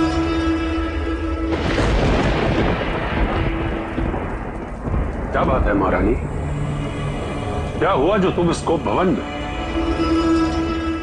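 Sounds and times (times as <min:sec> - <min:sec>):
rain: 0:00.0 - 0:10.8
thunder rumbling: 0:01.4 - 0:08.8.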